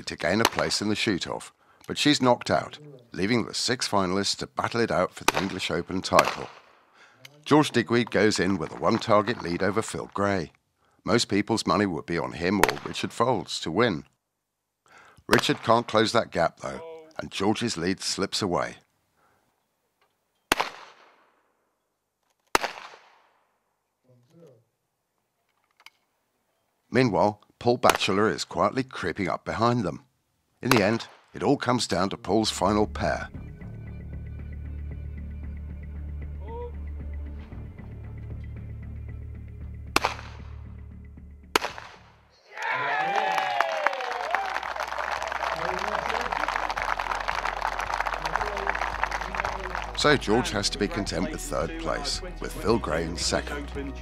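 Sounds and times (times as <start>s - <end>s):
shotgun shots with echo: 5.3s - 6.7s, 20.5s - 21.2s, 22.5s - 23.2s, 40.0s - 40.5s, 41.6s - 42.1s
people shouting and cheering: 42.4s - 54.0s
applause: 42.6s - 51.2s.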